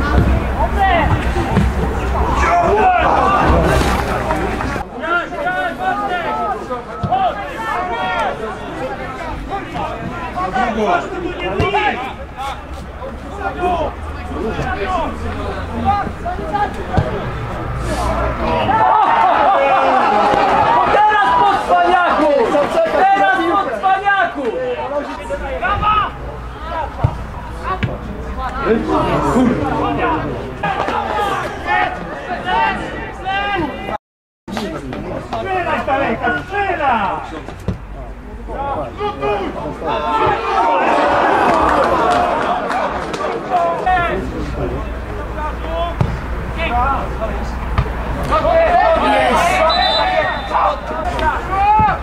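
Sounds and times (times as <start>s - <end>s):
voices shouting and calling out: 0.0s - 52.0s.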